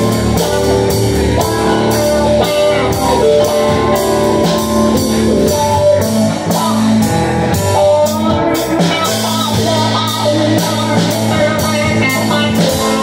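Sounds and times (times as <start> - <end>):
drum kit steady beat: 0.0 - 13.0
electric guitar: 0.0 - 13.0
stage keyboard: 0.0 - 13.0.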